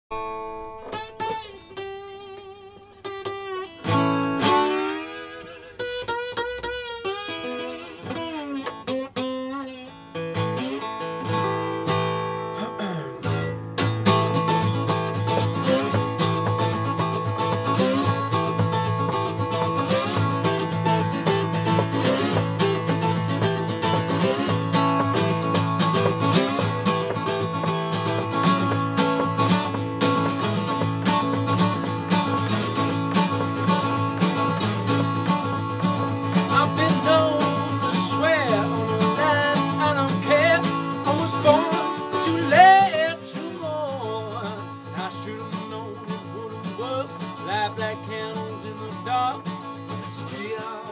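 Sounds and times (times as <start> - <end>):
slide acoustic guitar: 0.1 - 50.9.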